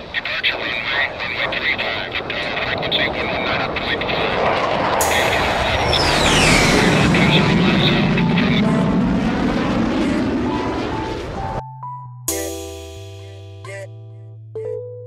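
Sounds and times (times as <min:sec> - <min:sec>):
air traffic control radio: 0:00.0 - 0:09.3
jet airplane passing: 0:00.0 - 0:11.6.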